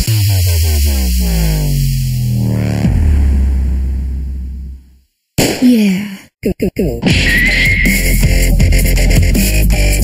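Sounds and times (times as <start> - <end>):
dubstep music: 0.0 - 4.8, 6.7 - 10.0
heavy sub-bass: 0.0 - 5.0, 7.0 - 10.0.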